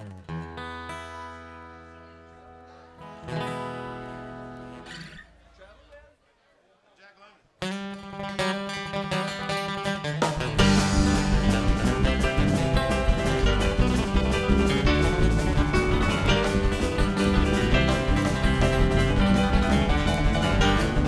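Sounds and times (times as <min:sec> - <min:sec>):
country-rock band playing: 0:00.0 - 0:02.3, 0:03.0 - 0:05.2, 0:07.6 - 0:21.0
acoustic guitar strumming: 0:00.0 - 0:05.3, 0:07.6 - 0:21.0.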